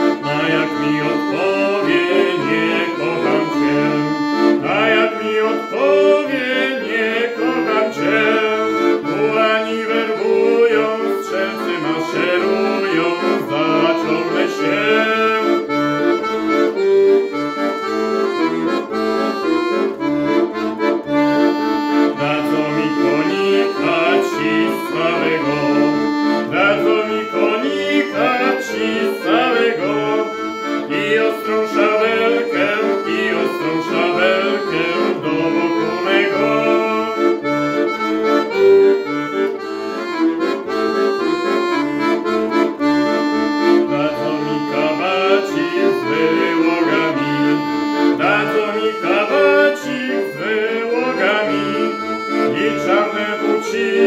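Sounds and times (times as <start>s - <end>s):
piano accordion playing a tune: 0.0s - 54.0s.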